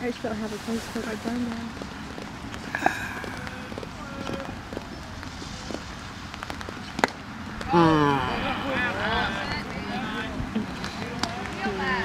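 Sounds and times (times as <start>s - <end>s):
wind rumble on microphone: 0.0s - 12.0s
faint spectator voices: 7.7s - 12.0s.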